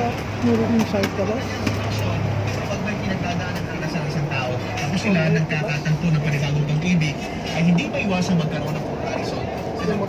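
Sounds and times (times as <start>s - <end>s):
bus engine running: 0.0s - 10.0s
man talking: 2.0s - 10.0s.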